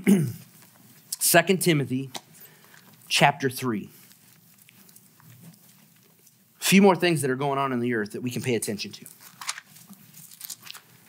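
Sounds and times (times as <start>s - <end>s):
pages being turned: 3.9s - 6.4s, 9.0s - 11.0s.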